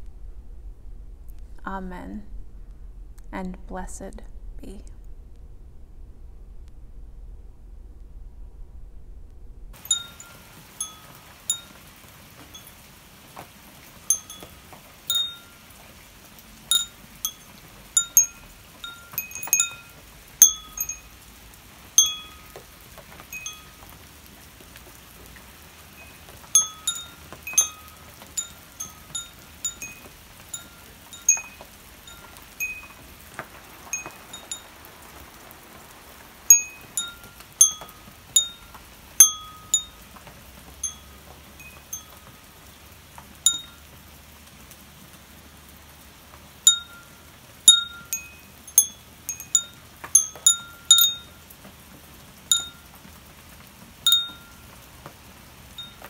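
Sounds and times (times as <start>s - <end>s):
metal wind chime ringing: 9.8s - 11.8s, 12.4s - 12.8s, 14.1s - 15.7s, 16.7s - 21.2s, 22.0s - 22.6s, 23.3s - 23.9s, 26.0s - 33.0s, 33.9s - 34.7s, 36.5s - 40.0s, 40.8s - 42.2s, 43.5s - 43.8s, 46.7s - 47.0s, 47.7s - 51.3s, 52.5s - 52.8s, 54.1s - 54.5s.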